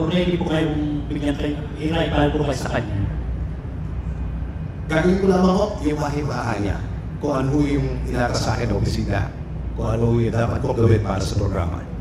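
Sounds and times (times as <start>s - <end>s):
man speaking: 0.0s - 3.3s, 4.9s - 12.0s
low background rumble: 0.0s - 12.0s.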